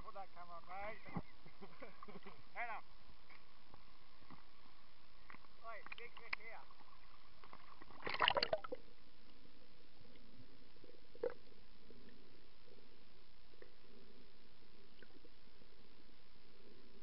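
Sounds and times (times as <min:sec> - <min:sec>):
distorted voice through water: 0:05.6 - 0:06.8, 0:11.0 - 0:12.2
burst of water noise: 0:08.0 - 0:08.8.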